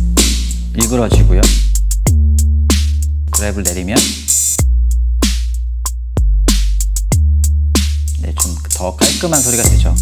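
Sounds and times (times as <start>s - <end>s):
sub-bass kick: 0.0s - 3.3s, 9.7s - 10.0s
hi-hat ticks: 6.5s - 10.0s.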